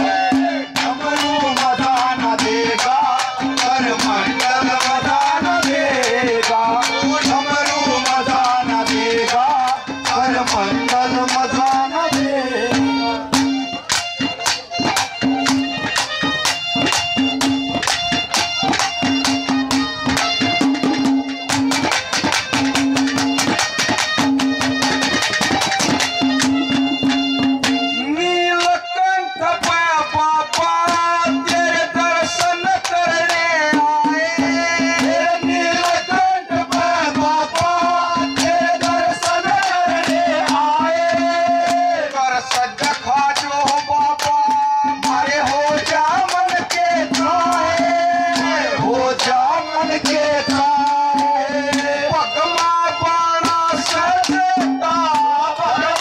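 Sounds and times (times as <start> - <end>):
man singing into a microphone: 0.0 - 15.9, 24.6 - 56.0
fast hand-drum strokes: 0.0 - 28.7, 29.6 - 56.0
harmonium: 0.0 - 56.0.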